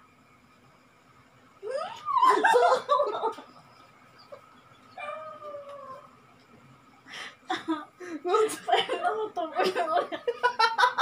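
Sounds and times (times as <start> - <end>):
high-pitched squeal of laughter: 1.6 - 3.4.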